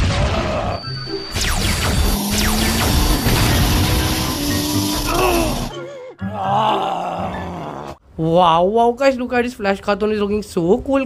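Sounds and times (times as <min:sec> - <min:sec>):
cartoon crash: 0:00.0 - 0:05.7
cartoon character groaning: 0:04.5 - 0:08.0.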